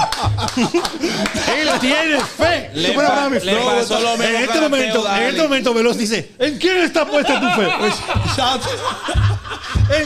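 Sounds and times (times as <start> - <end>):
people laughing and snickering: 0.0 - 2.4, 7.0 - 10.0
music beat with deep bass: 7.8 - 10.0.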